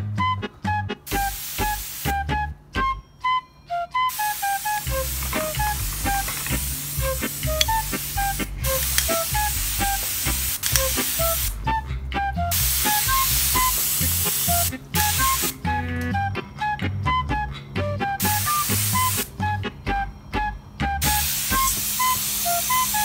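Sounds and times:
background music with bass line: 0.0s - 23.0s
water mister spraying: 1.1s - 2.2s, 4.1s - 11.7s, 12.5s - 15.6s, 18.2s - 19.3s, 21.0s - 23.0s.

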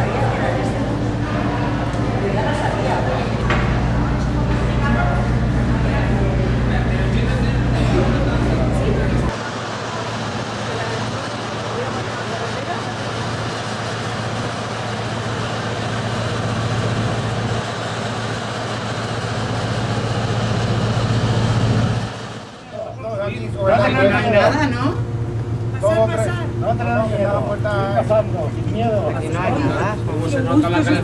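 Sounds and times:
people's voices: 0.0s - 17.6s
machinery and ventilation noise: 0.0s - 31.0s.

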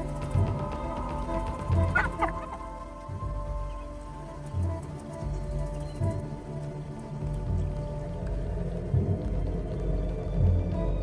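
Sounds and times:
background music with pulsing beat: 0.0s - 11.0s.

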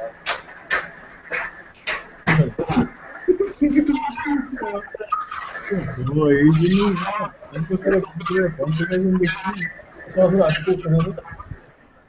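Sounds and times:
man talking: 2.3s - 11.6s.

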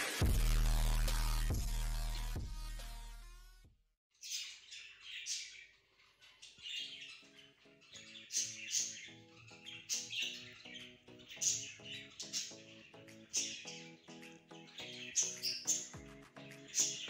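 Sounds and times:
soft background music: 6.4s - 17.0s.

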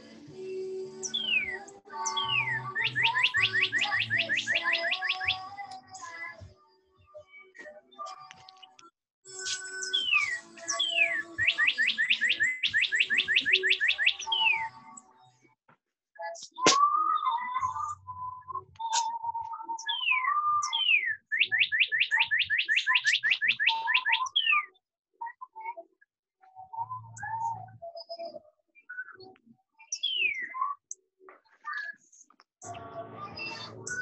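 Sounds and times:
songbird singing: 0.4s - 6.2s, 9.4s - 15.1s, 16.2s - 25.6s, 26.7s - 30.8s
low steady whistled tone: 16.2s - 30.9s, 33.3s - 34.0s.

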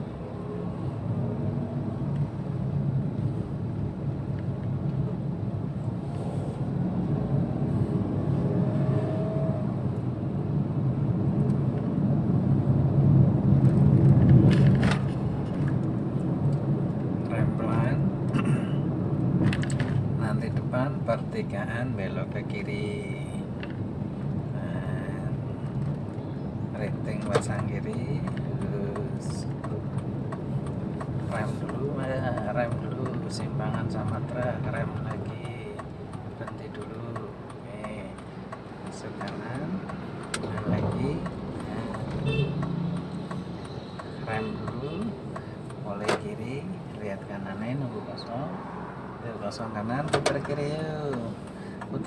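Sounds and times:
car engine and tyres hum: 0.0s - 52.0s.

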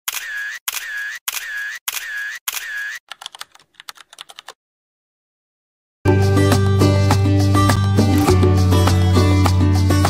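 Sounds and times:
camera shutter click and whir: 0.1s - 3.0s
keyboard typing clicks: 1.9s - 4.6s.

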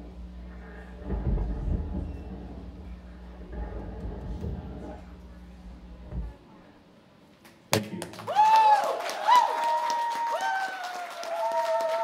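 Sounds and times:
deep rumbling electronic drone: 0.0s - 7.0s.

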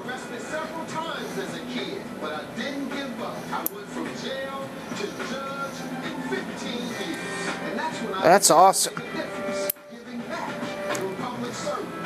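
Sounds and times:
television music: 0.0s - 12.0s
television voices: 0.0s - 12.0s.

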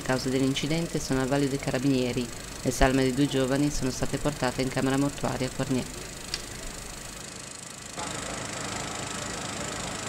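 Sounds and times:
background hum: 0.0s - 10.0s.

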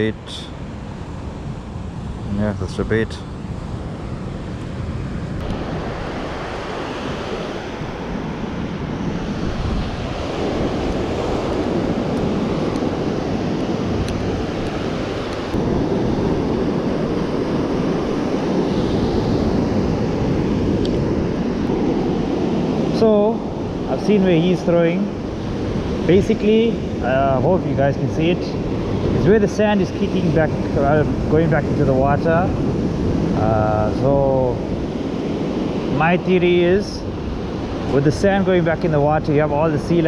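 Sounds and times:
ocean surf breaking: 0.0s - 40.0s
wind on microphone: 0.0s - 40.0s.

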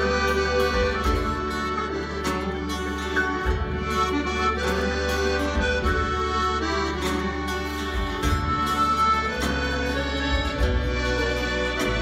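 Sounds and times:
accordion melody: 0.0s - 12.0s
folk band playing: 0.0s - 12.0s.

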